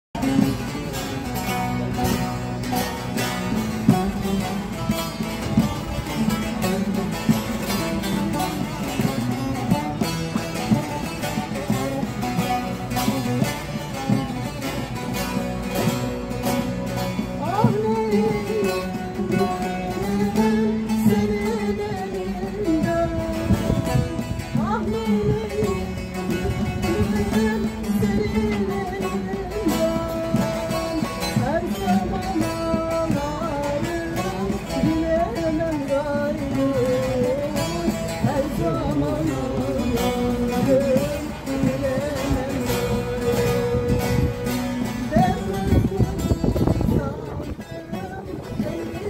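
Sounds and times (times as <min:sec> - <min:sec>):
long-necked lute plucked notes: 0:00.2 - 0:49.0.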